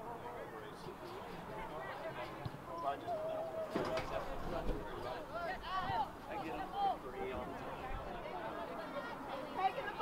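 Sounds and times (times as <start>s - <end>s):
voices of players and spectators: 0.0s - 10.0s.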